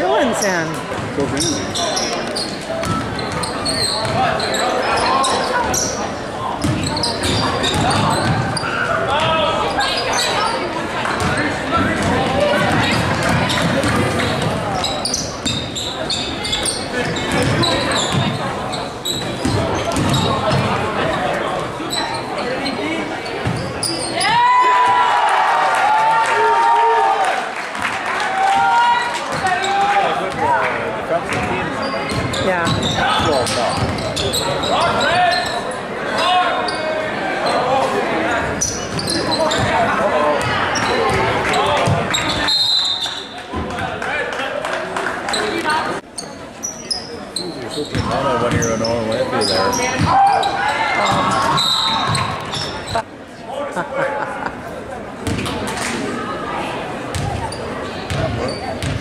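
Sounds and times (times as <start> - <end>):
spectators shouting and cheering: 22.2 - 46.0, 49.2 - 53.1
referee's whistle: 42.3 - 43.3.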